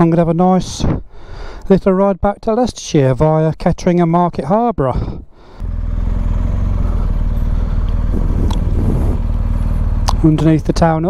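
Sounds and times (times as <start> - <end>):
motorcycle engine running: 5.6 - 11.0.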